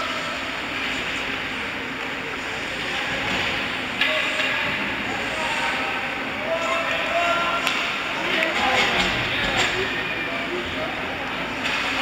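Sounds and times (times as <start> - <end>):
ice rink ambience hiss: 0.0 - 12.0.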